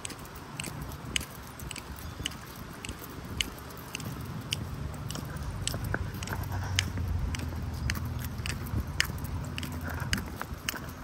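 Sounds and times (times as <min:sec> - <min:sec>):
footsteps on concrete: 0:00.0 - 0:11.0
low rumble: 0:04.0 - 0:11.0.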